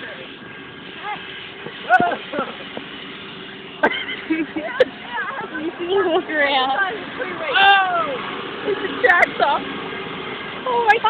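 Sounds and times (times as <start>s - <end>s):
small vehicle engine hum: 0.0s - 11.0s
onlookers exclaiming: 7.2s - 8.2s.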